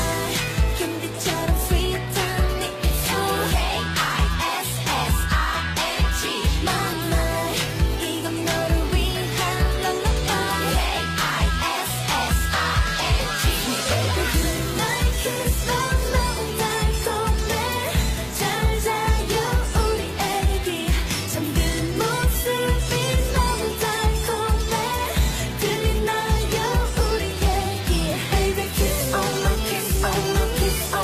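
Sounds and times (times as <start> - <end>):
pop song with heavy beat: 0.0 - 31.0.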